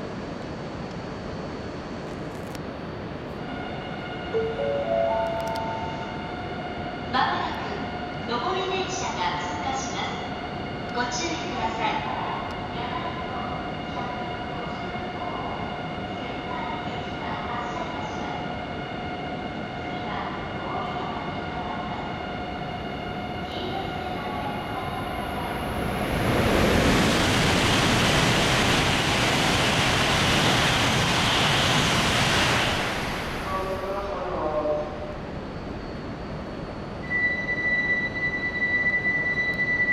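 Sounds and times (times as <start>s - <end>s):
high-speed train passing: 0.0s - 37.1s.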